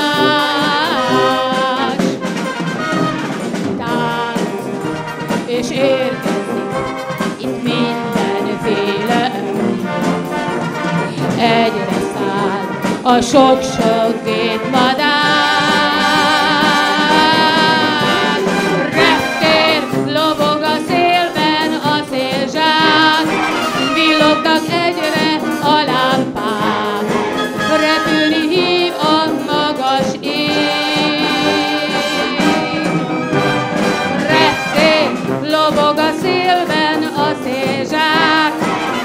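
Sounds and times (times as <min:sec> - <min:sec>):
percussion beat: 0:00.0 - 0:39.0
wind band playing: 0:00.0 - 0:39.0.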